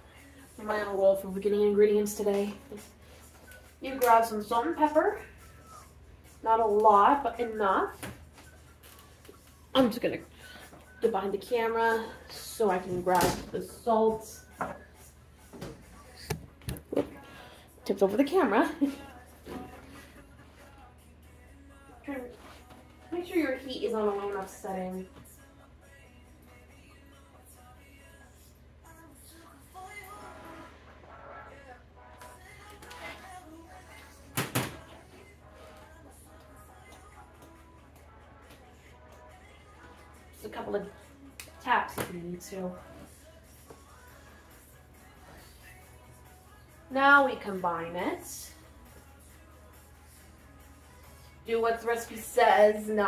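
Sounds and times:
woman speaking: 0.6s - 2.8s, 3.8s - 5.3s, 6.4s - 8.0s, 9.7s - 10.3s, 11.0s - 14.5s, 17.8s - 19.0s, 23.1s - 25.1s, 40.4s - 41.0s, 41.6s - 43.0s, 46.9s - 48.6s, 51.4s - 53.0s.

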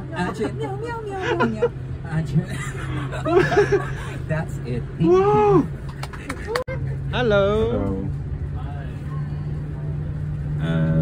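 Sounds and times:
bus engine drone: 0.0s - 11.0s.

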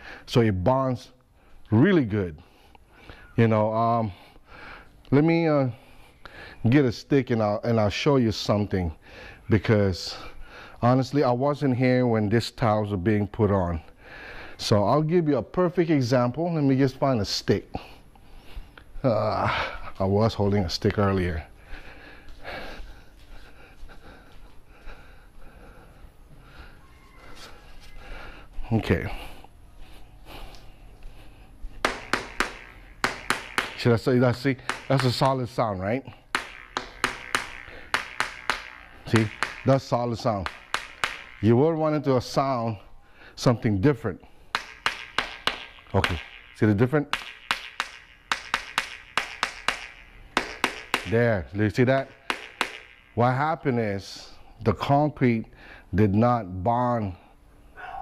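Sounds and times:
faint breathing: 0.0s - 0.3s, 2.4s - 3.4s, 4.0s - 5.0s, 5.7s - 6.6s, 9.0s - 9.5s, 10.1s - 10.8s, 13.9s - 14.6s, 17.7s - 20.0s, 21.5s - 31.8s, 42.9s - 43.4s, 55.5s - 56.0s, 57.2s - 58.0s
soft shuffling footsteps: 21.7s - 25.6s
stick tapping ceramic tiles: 31.8s - 42.6s, 44.5s - 53.4s.

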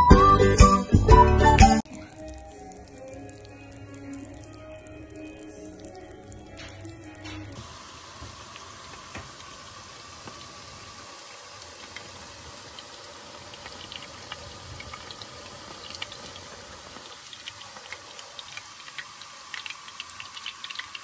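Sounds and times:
chicken sizzling in hot oil: 7.0s - 21.0s.

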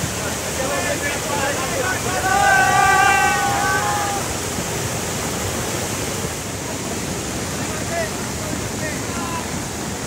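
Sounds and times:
river water rushing over rocks: 0.0s - 10.0s.

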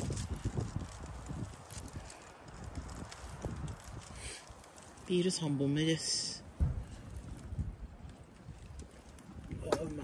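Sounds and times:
fire popping: 0.0s - 10.0s
wood fire burning: 0.0s - 10.0s.

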